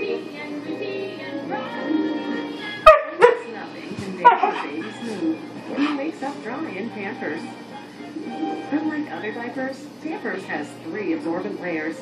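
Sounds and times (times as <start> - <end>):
dog barking: 2.9 - 3.5, 4.2 - 4.7
tv adverts with speech and music: 3.4 - 12.0.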